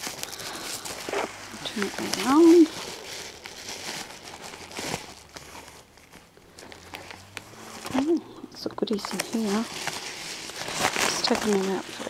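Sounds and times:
paper mailer crinkling: 0.0s - 12.0s.

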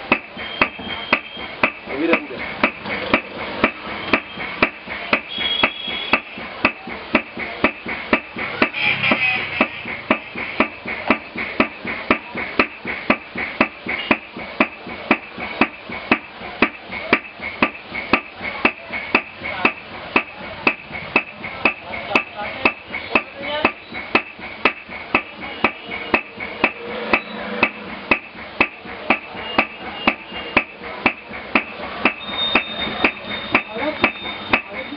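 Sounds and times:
hammer blows on leather: 2.6s - 21.3s.

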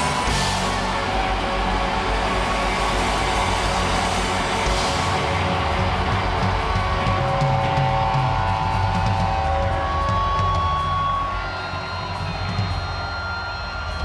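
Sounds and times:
distorted electric guitars: 0.0s - 14.0s
rock band playing live: 0.0s - 14.0s.

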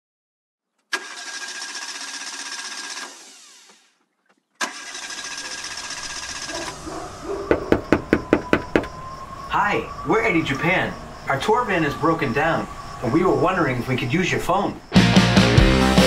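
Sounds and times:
engine cranking without starting: 0.9s - 4.0s, 4.6s - 7.4s
knocking on a door: 7.4s - 9.0s.

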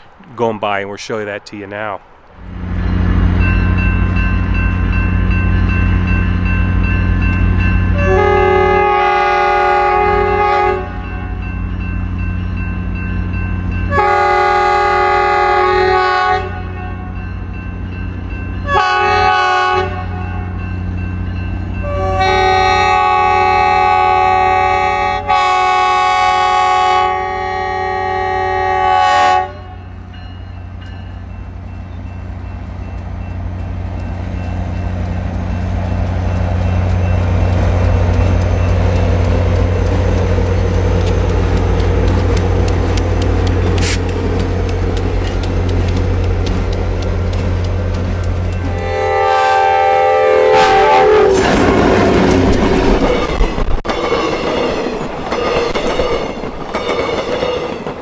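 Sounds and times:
diesel locomotive engine hum: 0.0s - 58.0s
locomotive air horn blasts: 7.9s - 11.4s, 13.9s - 17.2s, 18.6s - 20.6s, 21.8s - 29.9s, 48.6s - 51.5s.

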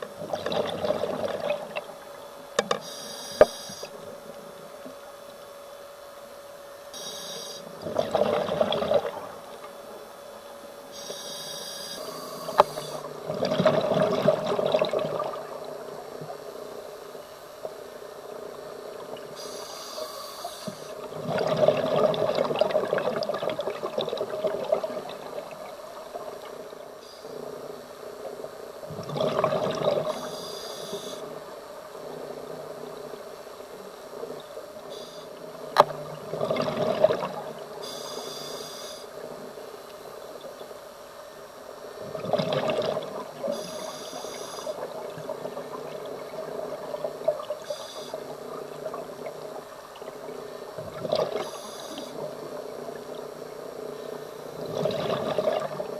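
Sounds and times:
regulator inhalation hiss: 2.8s - 3.9s, 11.0s - 13.1s, 19.4s - 21.0s, 30.2s - 31.3s, 37.8s - 39.1s
burbling exhaust bubbles: 7.8s - 9.3s, 13.1s - 15.8s, 21.0s - 25.8s, 28.9s - 30.2s, 35.8s - 37.6s, 42.0s - 43.5s, 54.5s - 55.9s.

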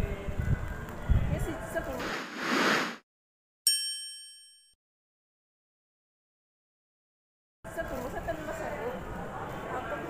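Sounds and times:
rush of noise: 2.0s - 3.0s.

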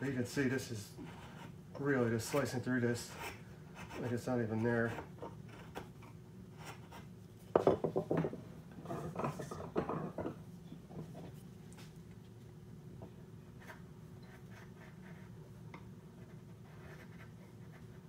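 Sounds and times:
chisel scraping wood: 1.0s - 7.1s.

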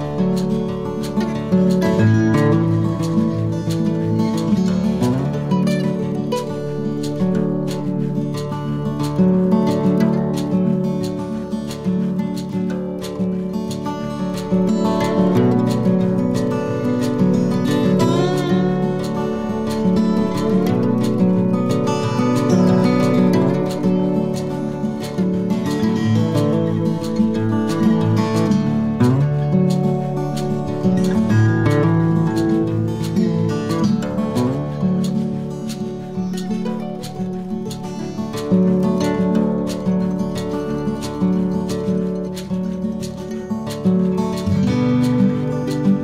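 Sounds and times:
instrumental background music: 0.0s - 46.0s.

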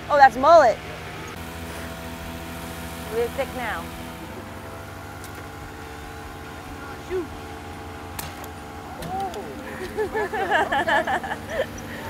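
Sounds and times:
boat motor humming: 0.0s - 12.0s
indistinct voices talking: 3.0s - 12.0s.

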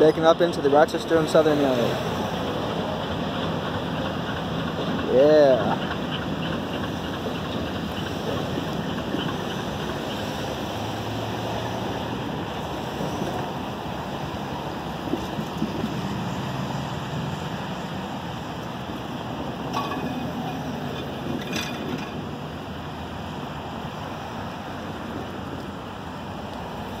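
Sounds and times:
diesel locomotive engine hum: 0.0s - 27.0s
wind noise on microphone: 6.6s - 22.8s.

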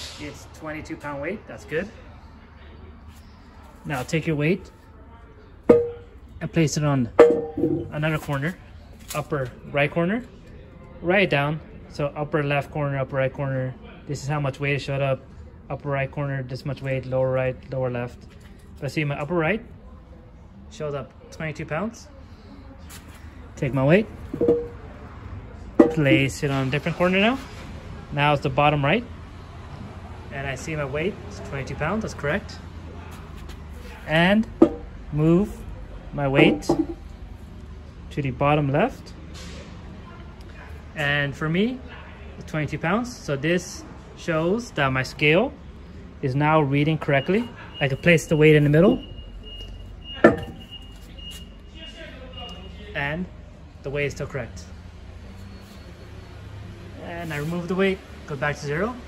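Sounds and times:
metal weight clanking on steel: 5.7s - 6.1s, 7.2s - 8.0s, 24.4s - 24.8s.

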